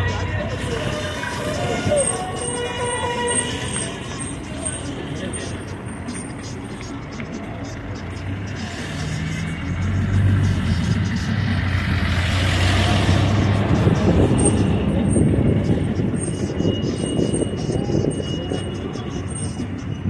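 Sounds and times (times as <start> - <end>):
minibus engine passing by: 0.0 - 20.0.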